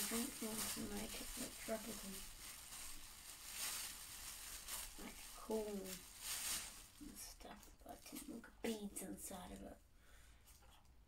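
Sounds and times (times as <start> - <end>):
plastic bin bag rustling: 0.0 - 8.4.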